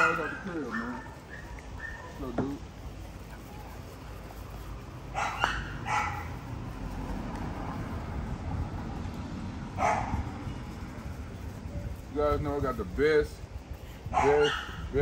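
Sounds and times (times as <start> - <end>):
steady low rumble: 2.6 - 15.0
puppies barking in short yaps: 5.1 - 6.3.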